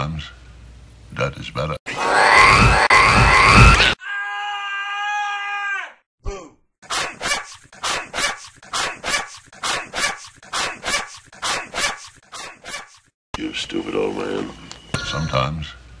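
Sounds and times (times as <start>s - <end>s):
cartoon scream: 1.9s - 6.0s.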